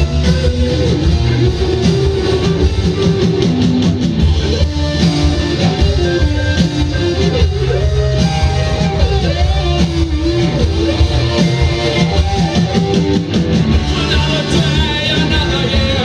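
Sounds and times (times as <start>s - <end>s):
rock band playing live: 0.0s - 16.0s.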